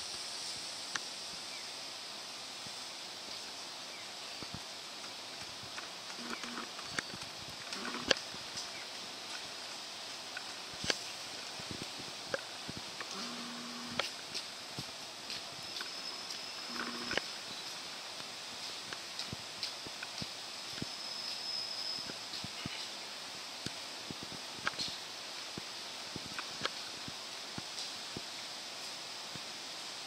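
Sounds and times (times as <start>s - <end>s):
steady outdoor hiss: 0.0s - 30.0s
light clicks and ticks: 10.3s - 17.3s, 18.2s - 20.9s
thin high whine: 11.7s - 14.3s, 14.9s - 17.7s.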